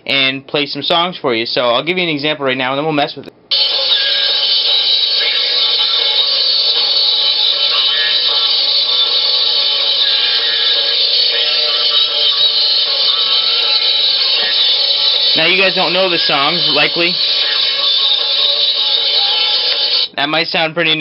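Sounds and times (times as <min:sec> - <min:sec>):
shrill pitch-shifted song from small speaker: 0:03.5 - 0:20.2.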